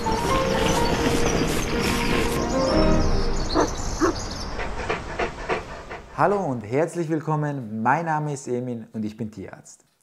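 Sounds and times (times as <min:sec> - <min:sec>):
dog panting: 0:04.0 - 0:06.6.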